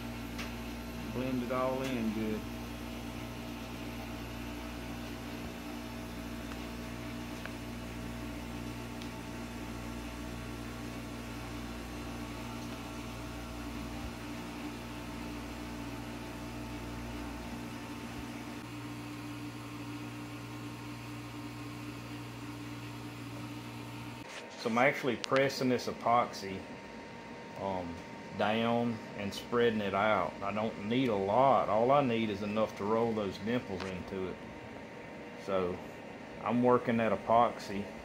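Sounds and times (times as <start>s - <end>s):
room equipment humming: 0.0s - 38.0s.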